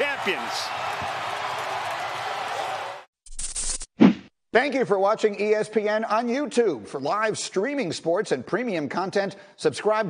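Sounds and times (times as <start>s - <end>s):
stadium crowd cheering: 0.0s - 3.1s.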